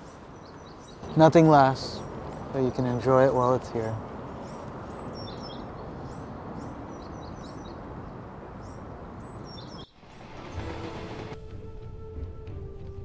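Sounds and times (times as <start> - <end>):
small birds chirping: 0.0 - 10.9
outdoor background hiss: 0.0 - 13.0.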